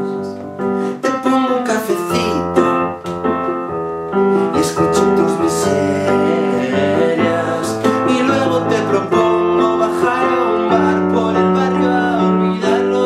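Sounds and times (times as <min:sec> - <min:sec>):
keyboard piano chords: 0:00.0 - 0:13.0.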